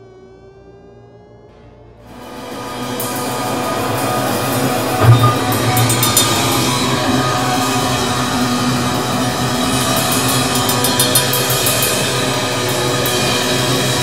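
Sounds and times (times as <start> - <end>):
live metal band playing: 4.9 - 8.7.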